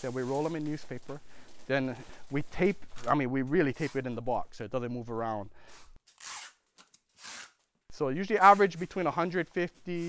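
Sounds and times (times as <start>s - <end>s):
packing tape ripping: 6.0s - 7.7s.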